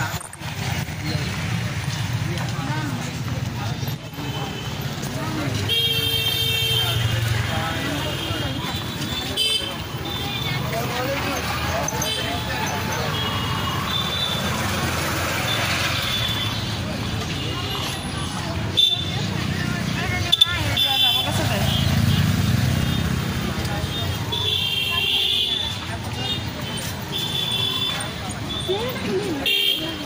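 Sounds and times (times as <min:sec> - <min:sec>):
street voices: 0:00.0 - 0:30.0
traffic: 0:00.0 - 0:30.0.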